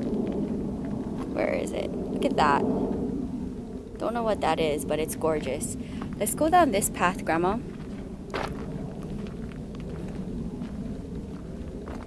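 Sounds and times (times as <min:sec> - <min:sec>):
footsteps on gravel: 0:00.0 - 0:01.7, 0:05.4 - 0:12.0
steady low rumble: 0:00.0 - 0:12.0.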